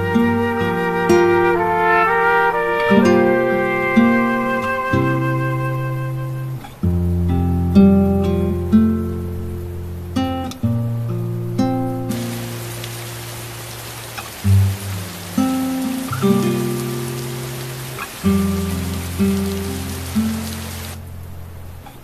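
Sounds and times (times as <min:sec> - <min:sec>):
slow background music: 0:00.0 - 0:10.3
steady rain: 0:00.0 - 0:22.0.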